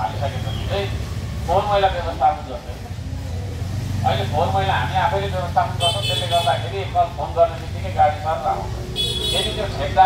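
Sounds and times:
motor vehicle rumble: 0.0 - 10.0
man's voice: 4.0 - 10.0.

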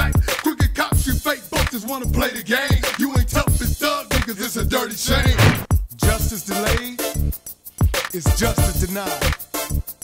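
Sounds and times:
man rapping: 0.0 - 7.2, 8.0 - 9.3
drum beat: 5.1 - 6.2.

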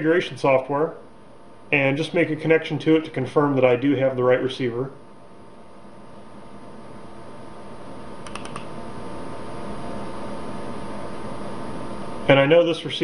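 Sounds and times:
room hiss with faint hum: 0.0 - 13.0
computer mouse clicks: 8.2 - 8.7.

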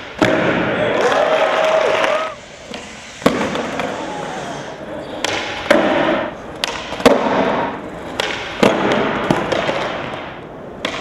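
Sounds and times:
spectators clapping and cheering: 0.7 - 2.4.

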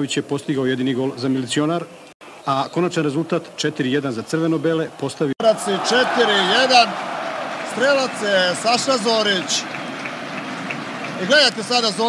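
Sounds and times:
stadium crowd noise: 2.4 - 12.0
man commentating: 2.5 - 7.0, 7.6 - 9.7, 11.2 - 12.0.

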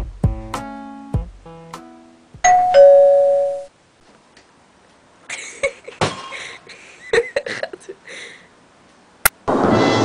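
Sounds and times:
plucked-string and keyboard music: 0.0 - 3.5
doorbell two-note chime: 2.4 - 3.7.

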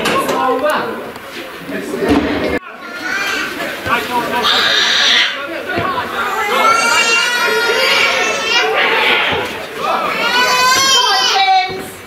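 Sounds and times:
other voices: 0.0 - 12.0.

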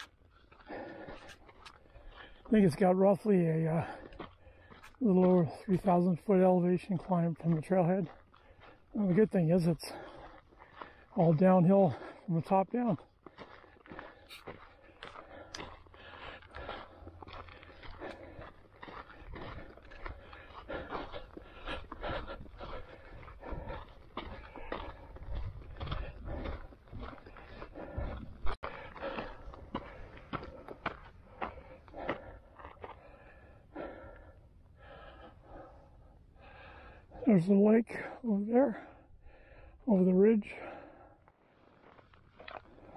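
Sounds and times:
footsteps on gravel: 0.0 - 42.9.

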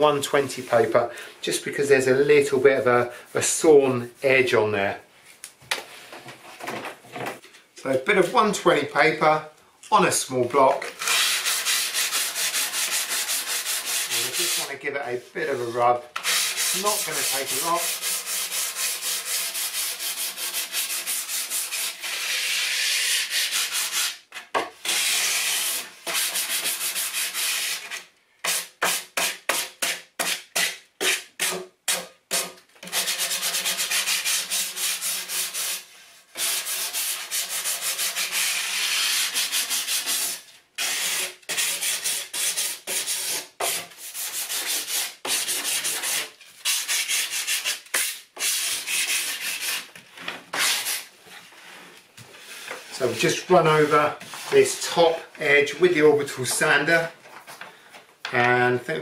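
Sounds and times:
sandpaper rubbing on wood: 11.0 - 14.7, 15.4 - 24.2, 24.8 - 31.5, 32.9 - 49.9, 50.5 - 51.1.

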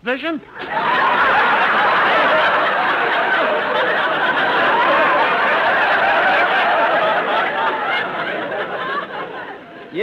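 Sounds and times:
studio audience laughing: 0.6 - 10.0.

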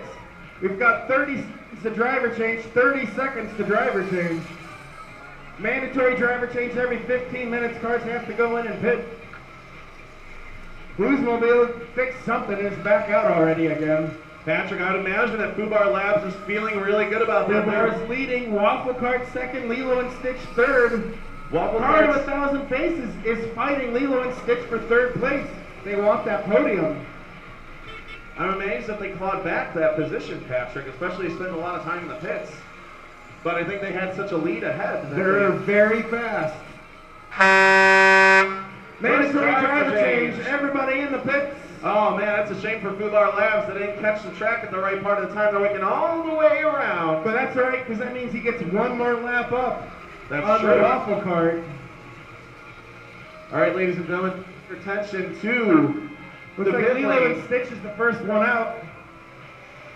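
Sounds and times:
faint background noise: 0.0 - 59.9
horn blast: 27.8 - 28.8, 37.3 - 39.4.

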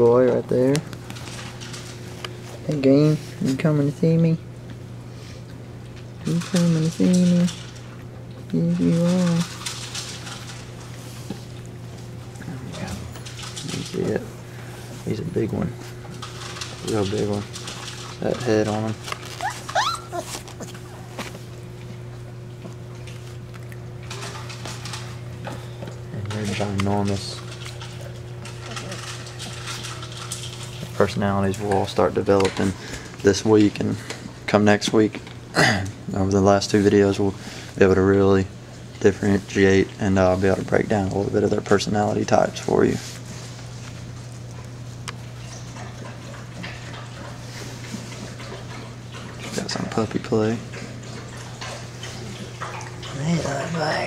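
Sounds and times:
steady low hum: 0.0 - 54.0
puppies scuffling in bedding: 8.7 - 22.2, 39.0 - 54.0
puppy whining: 19.2 - 21.2.

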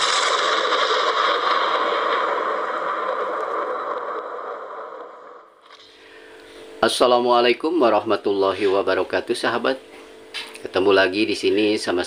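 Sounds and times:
steady rushing noise: 0.0 - 5.6.

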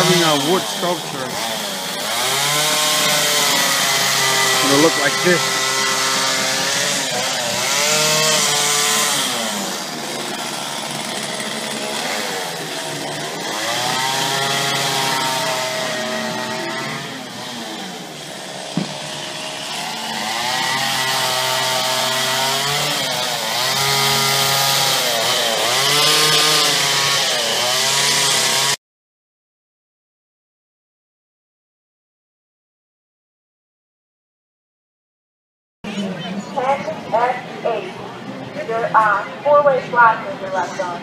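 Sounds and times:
chainsaw revving: 0.0 - 28.8.

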